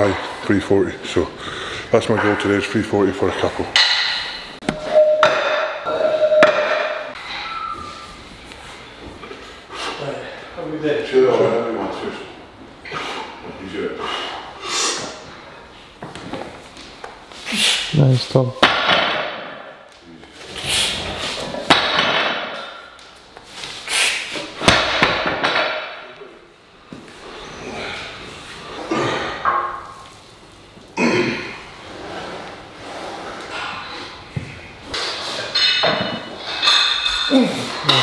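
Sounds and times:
strained breaths and grunts: 27.4 - 29.5.

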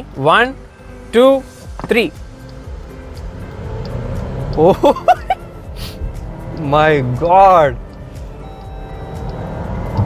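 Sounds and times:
car engine accelerating hard: 2.6 - 7.6, 8.7 - 10.0.

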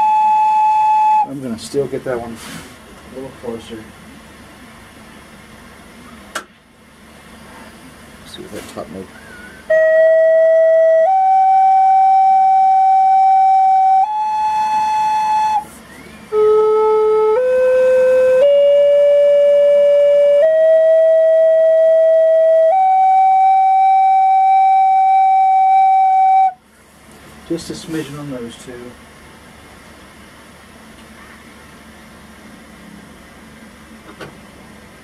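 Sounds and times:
flute notes: 0.0 - 1.5, 9.2 - 26.6.

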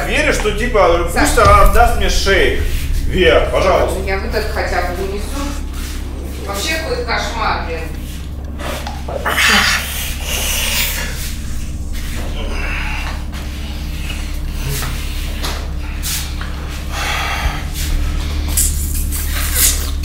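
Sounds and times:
steady low hum: 0.0 - 20.0
man breathing heavily and snorting: 8.6 - 19.4.

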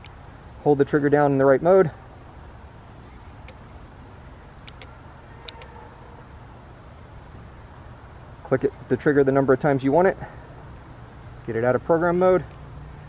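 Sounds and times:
low outdoor rumble: 0.0 - 13.0
trigger clicks: 4.6 - 5.7.

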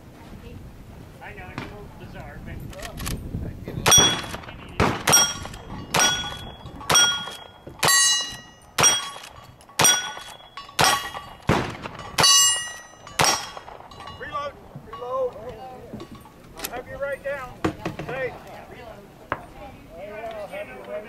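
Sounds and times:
gunshots: 3.8 - 14.1
steel target ringing: 3.9 - 15.3.

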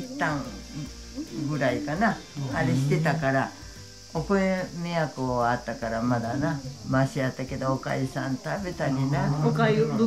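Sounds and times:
elderly woman speaking: 7.9 - 10.0.

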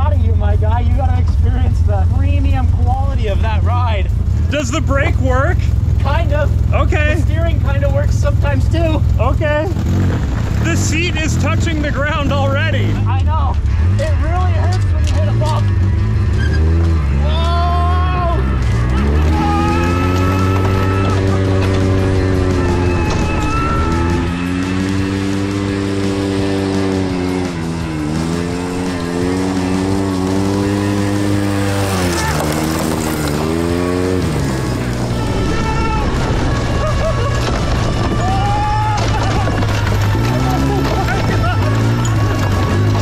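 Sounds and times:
steady bass line: 0.0 - 43.0
vehicle noise: 0.0 - 43.0.

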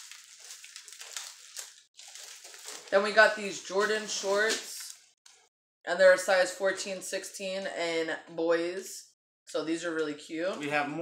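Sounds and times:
nylon fabric rustling: 0.0 - 5.0
plastic wrapper crinkling: 0.0 - 5.1.

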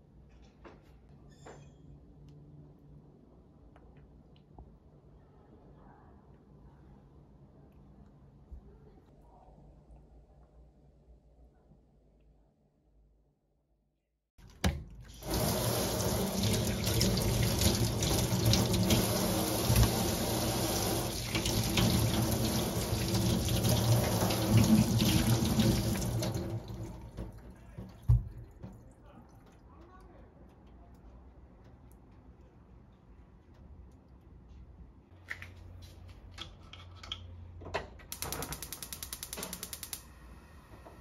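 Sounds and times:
gas stove igniter clicking: 38.1 - 40.1.

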